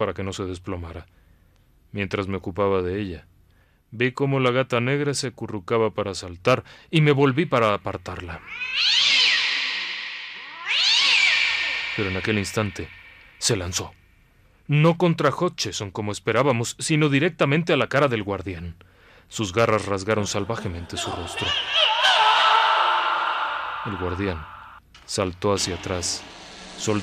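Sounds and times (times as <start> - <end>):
cat yowling: 8.3 - 13.7, 21.0 - 24.8.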